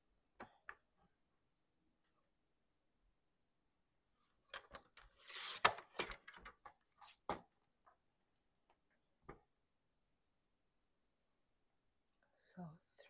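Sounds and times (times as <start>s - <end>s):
magazine page sliding and rustling: 5.1s - 7.3s.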